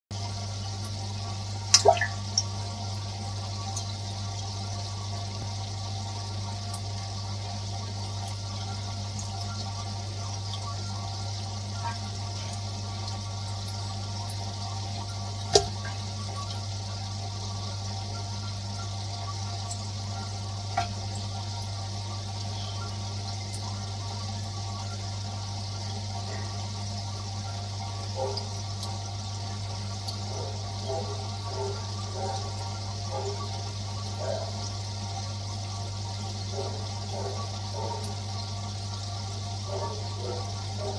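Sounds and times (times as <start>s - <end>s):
water and bubbles rushing: 1.6s - 2.5s, 15.4s - 16.4s.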